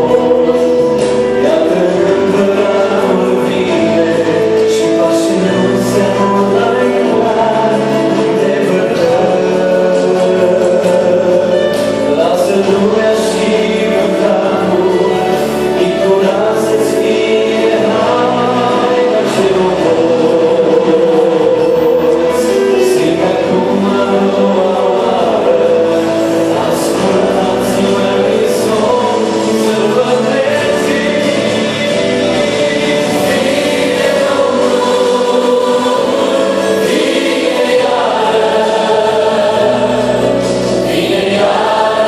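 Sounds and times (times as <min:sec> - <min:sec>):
group singing in harmony: 0:00.0 - 0:42.0
music: 0:00.0 - 0:42.0.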